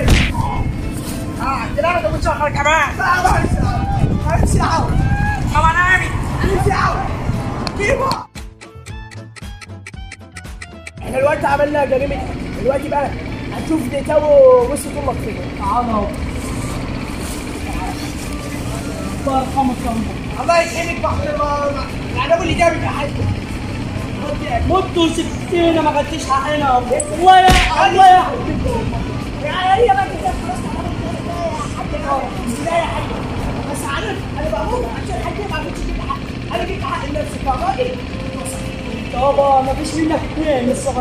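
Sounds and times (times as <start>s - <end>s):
low outdoor rumble: 11.0s - 41.0s.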